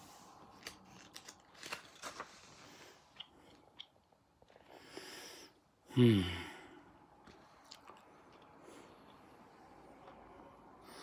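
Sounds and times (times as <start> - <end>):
man sighing: 5.8 - 6.9.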